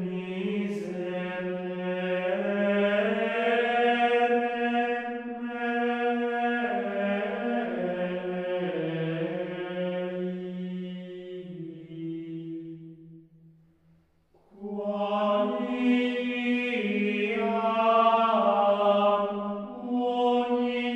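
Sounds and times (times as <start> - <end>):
unaccompanied chant singing: 0.0 - 12.8, 14.6 - 20.9.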